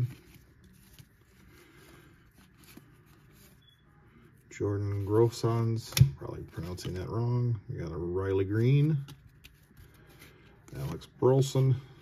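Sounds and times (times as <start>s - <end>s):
paper cards flicking and sliding: 0.0s - 3.6s, 9.0s - 10.4s.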